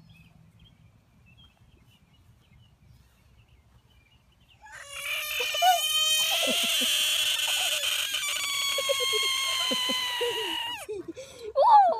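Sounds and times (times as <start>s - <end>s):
frog screaming: 4.7s - 10.9s.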